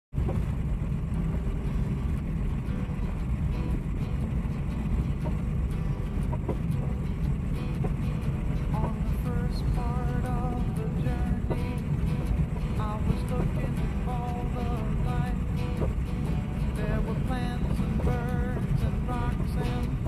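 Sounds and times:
car driving on unpaved road: 0:00.1 - 0:20.0.

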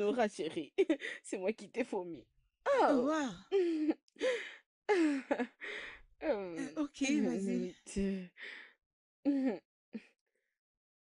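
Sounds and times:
woman murmuring: 0:06.2 - 0:08.3.

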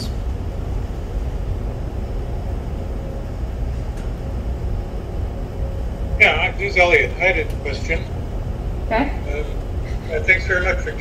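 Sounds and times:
faint hum: 0:00.0 - 0:11.0
low rumble: 0:00.0 - 0:11.0.

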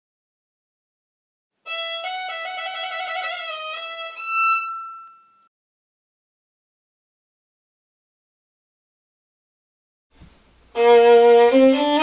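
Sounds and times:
solo violin phrase: 0:01.7 - 0:05.5, 0:10.7 - 0:12.0.

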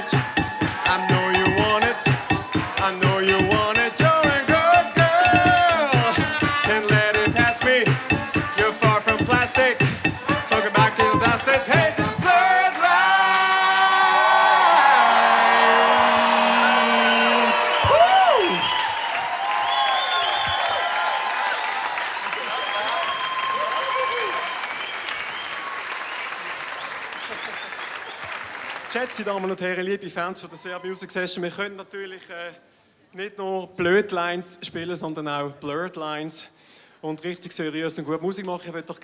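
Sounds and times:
band with singers playing: 0:00.0 - 0:12.8
audience applause and cheering: 0:00.0 - 0:29.4
whoops and whistles: 0:16.2 - 0:28.3.

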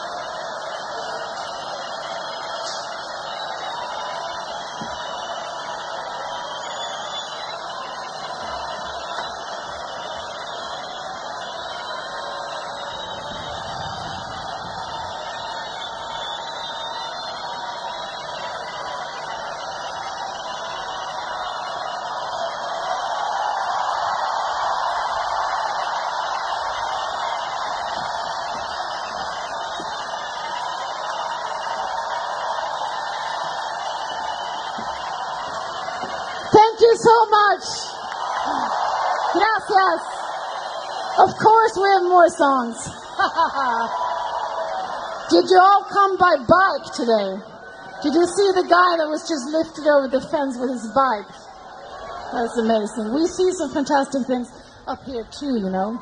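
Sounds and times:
crowd cheering and shouting: 0:00.0 - 0:56.0.

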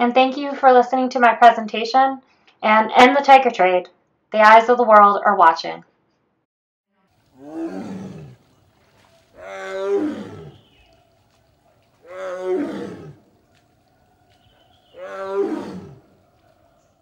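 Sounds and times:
tiger roaring: 0:07.2 - 0:11.1, 0:12.0 - 0:17.0.

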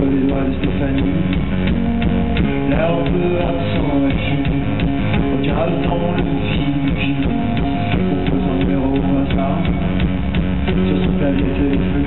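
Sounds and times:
electric guitar: 0:00.0 - 0:12.0
steady drum beat: 0:00.0 - 0:12.0.

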